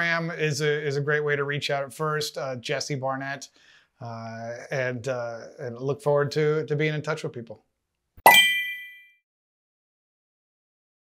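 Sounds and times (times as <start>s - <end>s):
bell-like ding with dull knock: 8.3s - 9.2s.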